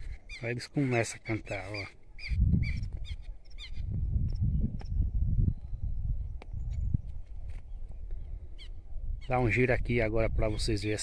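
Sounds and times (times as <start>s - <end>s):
lapwings calling: 0.0s - 4.0s
low microphone rumble: 2.2s - 10.4s.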